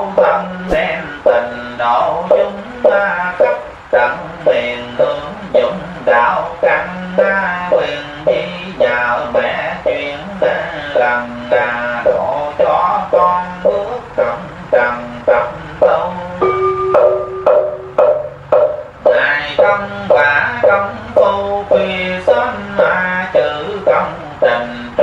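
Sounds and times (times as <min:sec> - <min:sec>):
person chanting verse: 0:00.0 - 0:16.5, 0:19.0 - 0:25.0.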